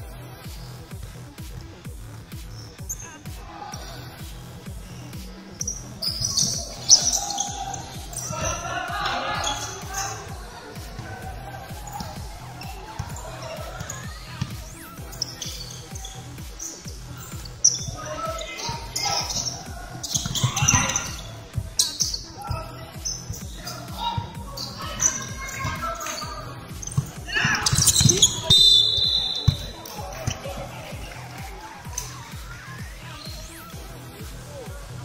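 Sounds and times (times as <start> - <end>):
sneaker squeak: 2.3 - 33.8
basketball bouncing on wooden floor: 18.8 - 23.6, 26.8 - 30.6.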